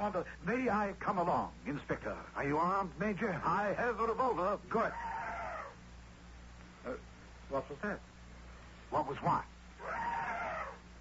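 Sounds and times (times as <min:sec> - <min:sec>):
elephant trumpeting: 0:04.9 - 0:05.8, 0:09.8 - 0:10.9.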